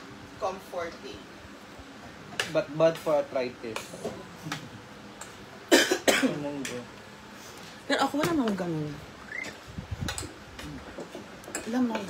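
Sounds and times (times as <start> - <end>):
person coughing: 5.7 - 6.5.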